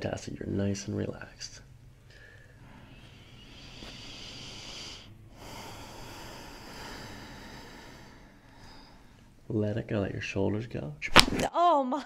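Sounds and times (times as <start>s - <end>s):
woman breathing through nose: 2.1s - 9.5s.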